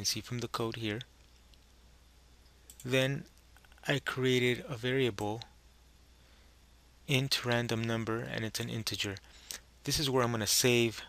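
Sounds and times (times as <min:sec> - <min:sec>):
man speaking: 0:00.0 - 0:01.1, 0:02.8 - 0:05.5, 0:07.1 - 0:09.2, 0:09.8 - 0:11.0
faint low hum and hiss: 0:00.0 - 0:11.0.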